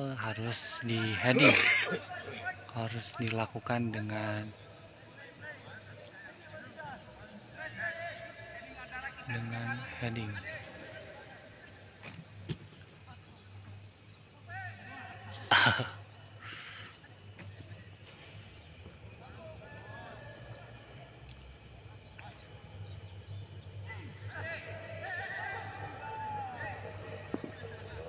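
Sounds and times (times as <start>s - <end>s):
distant shouts of footballers: 23.8s - 28.0s.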